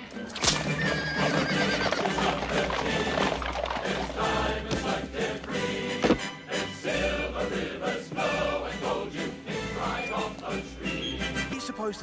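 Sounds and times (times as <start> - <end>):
orchestral accompaniment: 0.0 - 12.0
male chorus singing: 1.2 - 12.0.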